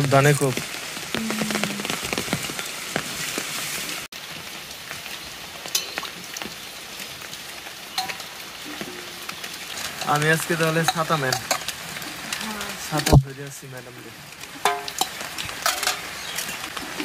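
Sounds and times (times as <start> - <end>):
rain pattering on wet ground: 0.0 - 17.0.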